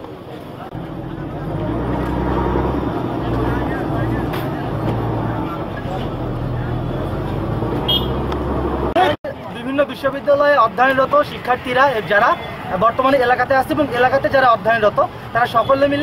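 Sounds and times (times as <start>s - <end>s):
people talking: 0.0s - 7.5s, 8.9s - 16.0s
vehicle engine humming: 0.0s - 9.2s.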